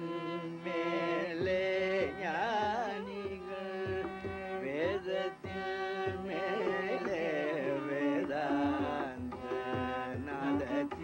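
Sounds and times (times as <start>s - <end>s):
elderly man singing: 0.0s - 11.0s
violin accompaniment: 0.0s - 11.0s.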